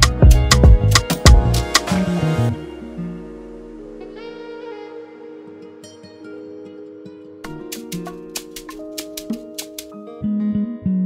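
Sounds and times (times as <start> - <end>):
loud bass line: 0.0 - 3.6
plucked guitar melody: 0.0 - 11.0
light ticking percussion: 7.5 - 9.9.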